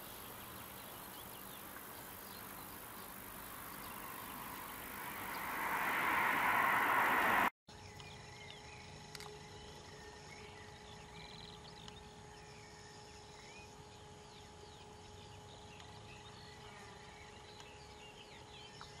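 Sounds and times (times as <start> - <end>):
faint chirps: 0.0 - 11.4
vehicle passing: 3.1 - 7.5.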